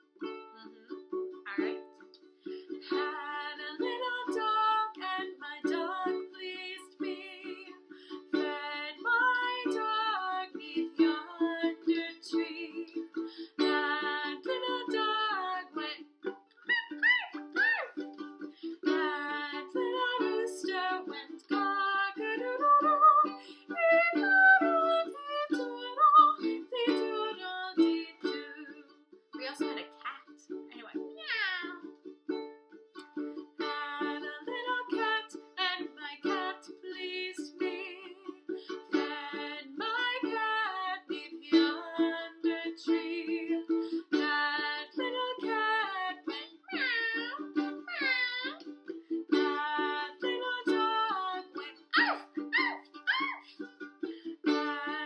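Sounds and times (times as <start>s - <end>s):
woman singing: 0.0s - 2.0s, 2.8s - 16.1s, 18.6s - 31.9s, 33.6s - 53.7s, 54.4s - 55.0s
ukulele strumming: 0.0s - 55.0s.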